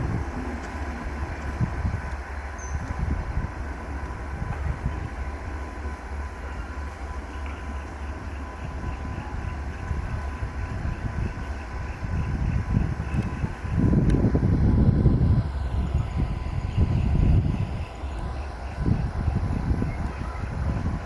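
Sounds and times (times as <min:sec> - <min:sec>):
locomotive engine and rail rumble: 0:00.0 - 0:21.0.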